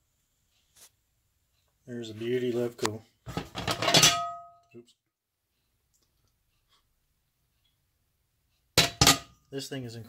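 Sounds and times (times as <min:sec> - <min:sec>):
iron skillet clanging on stove: 0:03.3 - 0:04.6, 0:08.8 - 0:09.4.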